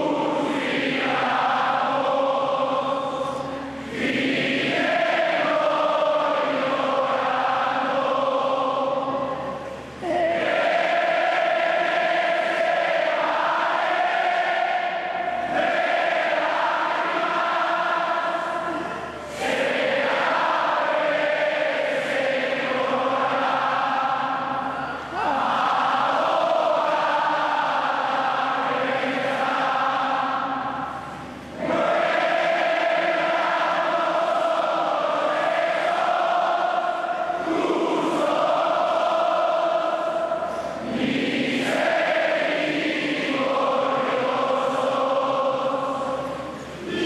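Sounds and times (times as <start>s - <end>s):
crowd singing in unison: 0.0s - 47.0s.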